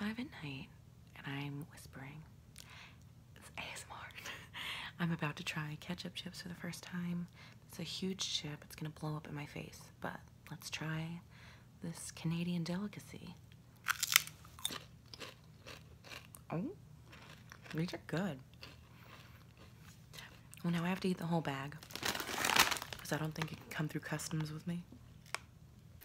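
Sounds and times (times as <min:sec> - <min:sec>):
woman whispering: 0:03.4 - 0:04.3
person chewing crisp chips: 0:13.8 - 0:20.9, 0:21.8 - 0:23.5.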